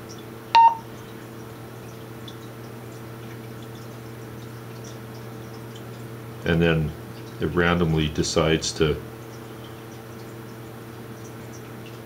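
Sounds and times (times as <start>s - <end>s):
steady low hum: 0.5s - 1.2s
short electronic key beep: 0.6s - 0.8s.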